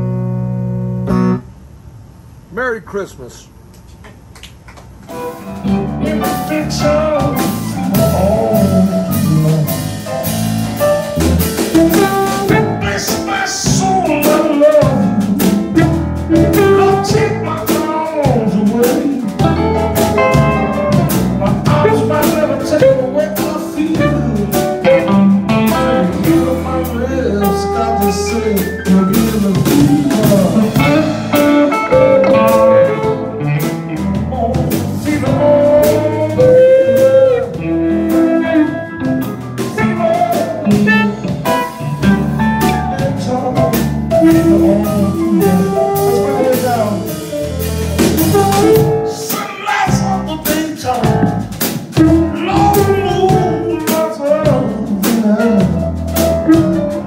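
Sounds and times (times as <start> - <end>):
bass guitar: 0.0 - 2.7, 4.9 - 57.0
drums: 1.1 - 57.0
electric guitar: 5.1 - 57.0
amplified harmonica: 24.0 - 29.0, 35.4 - 43.2.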